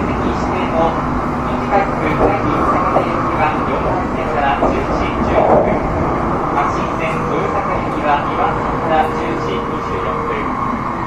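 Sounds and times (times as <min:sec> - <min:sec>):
faint voices: 0:00.0 - 0:11.0
train rumbling at speed: 0:00.0 - 0:11.0.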